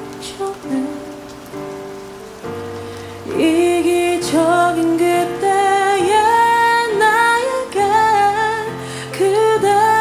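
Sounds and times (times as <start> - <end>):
soft held ballad chords: 0.0 - 10.0
steady rain falling: 0.0 - 10.0.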